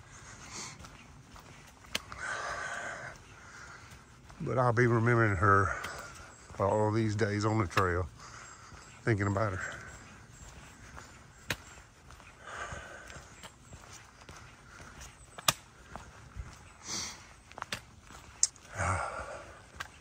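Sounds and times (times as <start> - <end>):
footsteps on dry leaves: 0.0 - 20.0
sharp clicks: 1.8 - 2.2.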